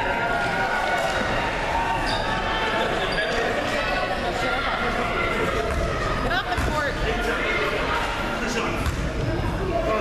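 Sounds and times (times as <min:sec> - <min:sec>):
basketball bouncing on hardwood: 0:06.5 - 0:06.8.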